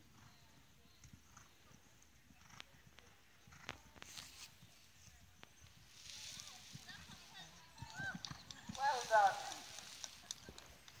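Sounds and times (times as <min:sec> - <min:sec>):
horse hooves thudding on sand: 0:05.7 - 0:11.0.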